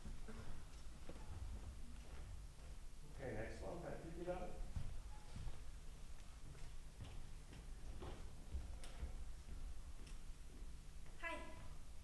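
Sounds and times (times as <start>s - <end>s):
faint footsteps on floor: 0.0s - 3.2s, 4.3s - 11.8s.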